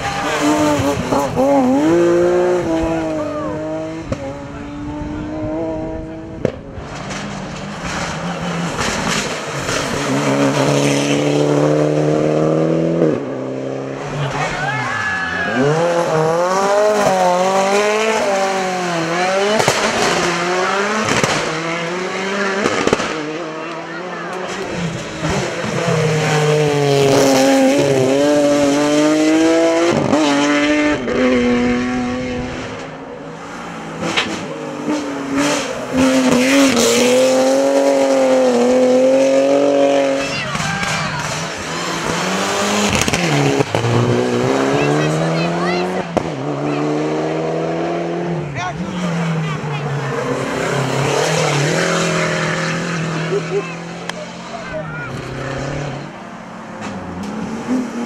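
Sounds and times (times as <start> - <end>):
race car engines at full throttle: 0.0 - 58.0.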